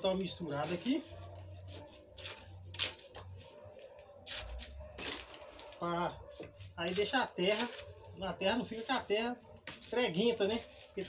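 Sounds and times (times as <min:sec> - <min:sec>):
gritty rustles and scrapes: 0:00.1 - 0:11.0.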